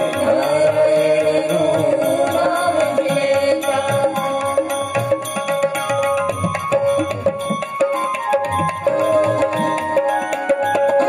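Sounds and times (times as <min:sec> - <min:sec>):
person singing: 0:00.0 - 0:04.9
harmonium: 0:00.0 - 0:11.0
percussion strokes: 0:00.0 - 0:11.0.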